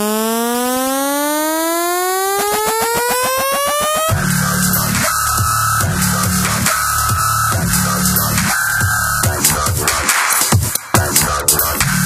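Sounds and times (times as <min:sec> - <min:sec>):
rising synthesizer tone: 0:00.0 - 0:09.3
fast synth pulsing: 0:00.0 - 0:10.1.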